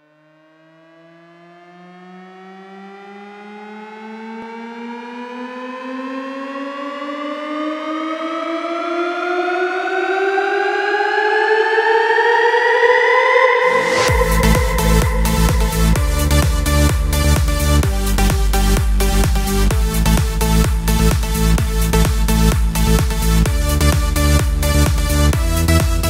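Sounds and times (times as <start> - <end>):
synthesizer tone gliding upward: 0.0 - 25.8.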